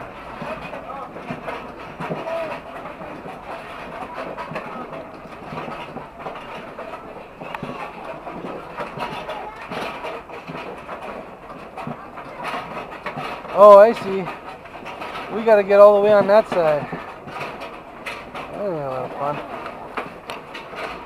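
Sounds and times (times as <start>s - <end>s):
coaster sled rattling on track: 0.0s - 21.0s.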